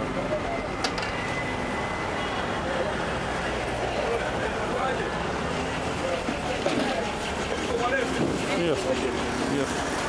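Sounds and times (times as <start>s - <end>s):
people talking: 6.0s - 9.8s.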